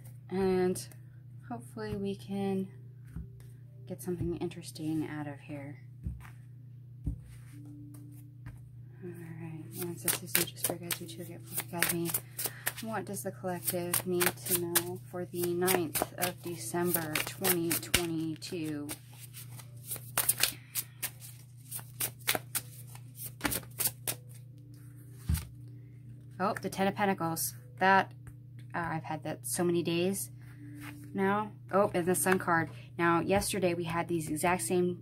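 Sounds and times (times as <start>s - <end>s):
steady low hum: 0.0s - 35.0s
cards shuffled by hand: 9.7s - 24.4s
low drone music: 23.7s - 33.0s.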